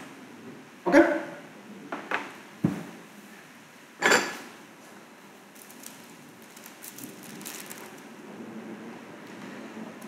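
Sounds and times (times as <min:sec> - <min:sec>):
faint room noise: 0:00.0 - 0:10.0
rustling: 0:05.6 - 0:08.1.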